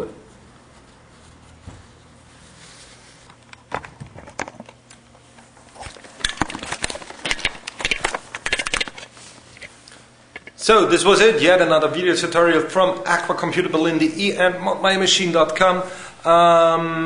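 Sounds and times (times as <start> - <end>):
faint steady hum: 0.0 - 17.0
knocks and rubbing on camera: 1.6 - 2.0.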